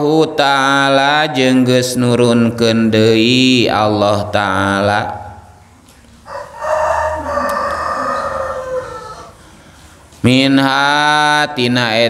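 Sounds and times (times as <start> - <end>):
rooster crowing: 6.2 - 9.6.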